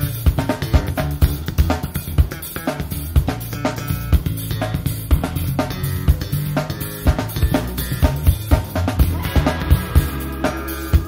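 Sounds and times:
bass line: 0.0s - 11.0s
drum kit beats: 0.0s - 11.0s
funk band instrumental: 0.0s - 11.0s.

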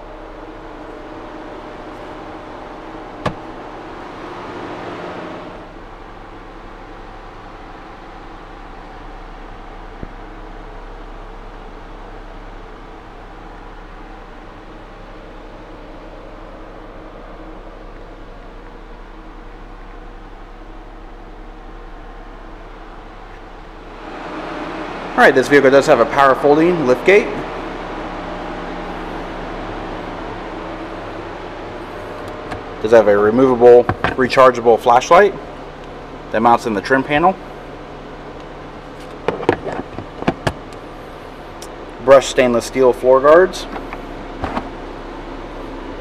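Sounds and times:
low mechanical hum: 0.0s - 46.0s.

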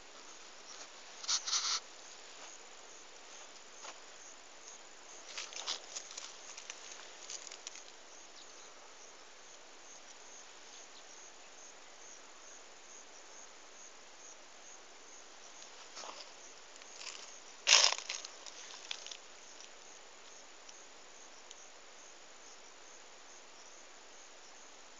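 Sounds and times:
rustling: 0.0s - 2.6s, 5.1s - 8.0s, 15.6s - 19.7s
crickets chirping: 0.0s - 24.9s.

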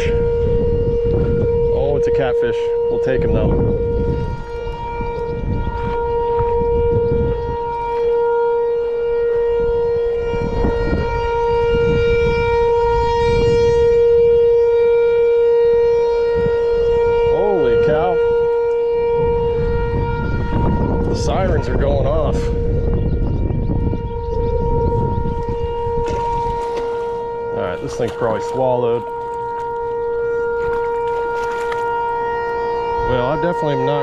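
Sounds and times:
low rumbling noise: 0.0s - 13.9s, 16.4s - 32.2s
steady whining tone: 0.0s - 34.0s.

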